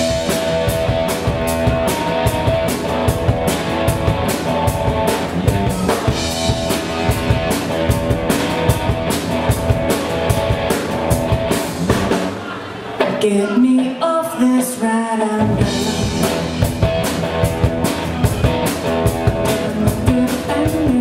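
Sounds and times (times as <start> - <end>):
electric guitars: 0.0 - 13.2, 13.9 - 21.0
drum kit beat: 0.0 - 14.0, 15.4 - 21.0.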